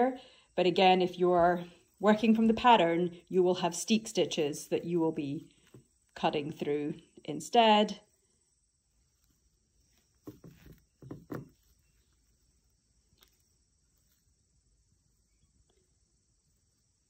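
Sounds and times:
faint handling rustles and knocks: 0:09.1 - 0:14.3.

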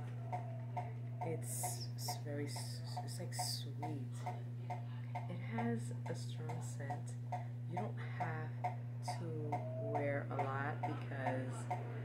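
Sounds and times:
light ticking: 0:00.0 - 0:11.9
low hum: 0:00.0 - 0:12.0
voice murmuring: 0:09.1 - 0:12.0.

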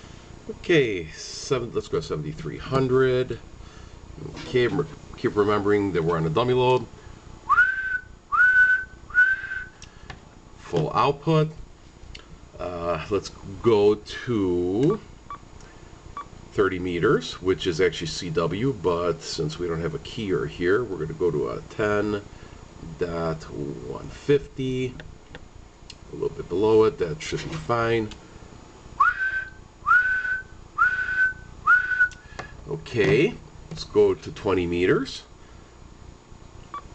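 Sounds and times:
person whistling: 0:07.5 - 0:09.8, 0:29.0 - 0:32.3.

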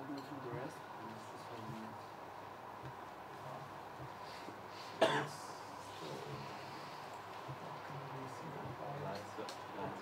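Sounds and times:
low room hum: 0:00.0 - 0:10.0
person coughing: 0:05.0 - 0:05.4.

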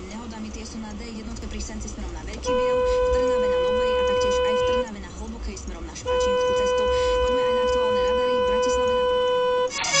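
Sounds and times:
car horn long blast: 0:02.4 - 0:04.9, 0:06.0 - 0:10.0.

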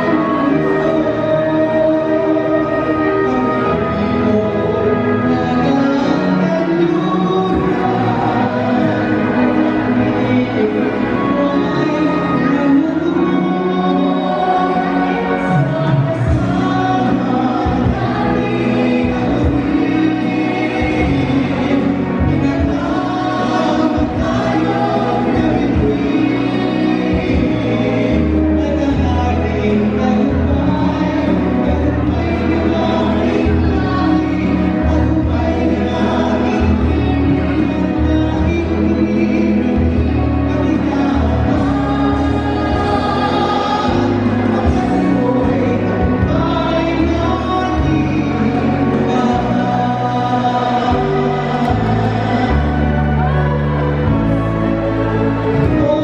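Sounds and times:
backing music with low bass: 0:00.0 - 0:56.0
group singing through a pa: 0:05.8 - 0:56.0.

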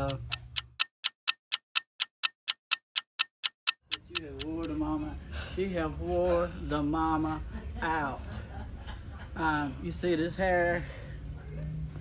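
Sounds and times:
stopwatch ticking: 0:00.0 - 0:04.8.

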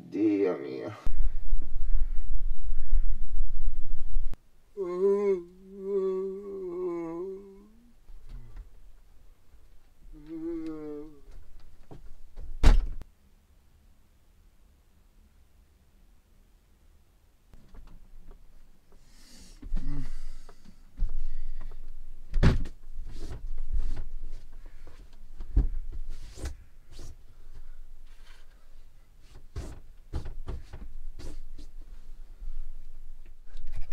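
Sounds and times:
door slamming shut: 0:12.4 - 0:13.0.

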